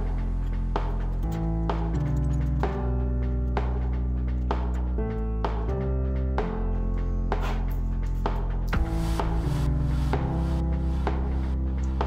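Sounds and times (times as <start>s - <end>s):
background music with beat: 0.0s - 12.0s.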